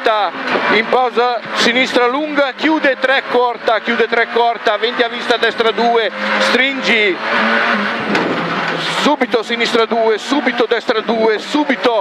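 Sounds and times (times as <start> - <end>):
car engine from inside cabin: 0.0 - 12.0
road and mechanical noise: 0.0 - 12.0.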